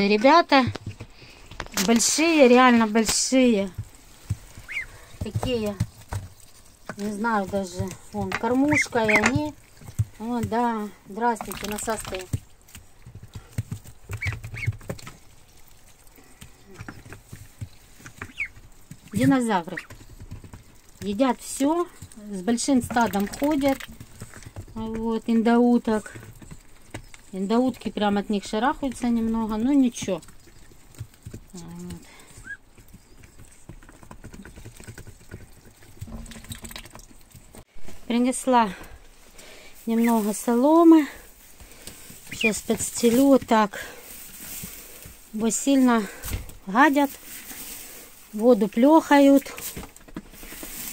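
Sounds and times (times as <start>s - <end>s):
ducklings pecking at feed: 0.0s - 50.9s
soft knocks and rustles in straw: 0.6s - 10.8s, 37.6s - 50.9s
high peeping calls: 4.5s - 5.7s, 8.4s - 9.6s, 14.1s - 14.9s, 16.7s - 19.9s, 42.2s - 43.2s.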